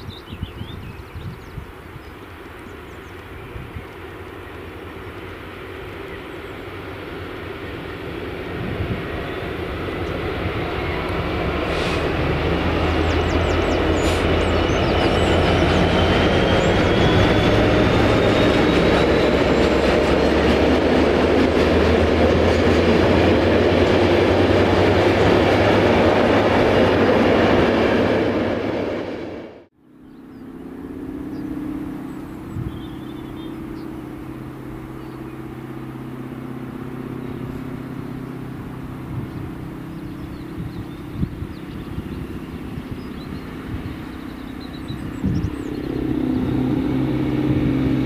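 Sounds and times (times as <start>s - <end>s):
freight train rumble: 0.0s - 48.0s
low engine drone: 1.7s - 48.0s.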